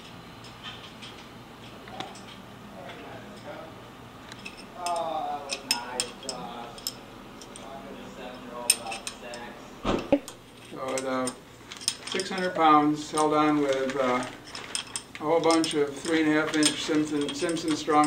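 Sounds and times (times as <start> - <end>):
metal clinks and taps: 10.5 - 18.0.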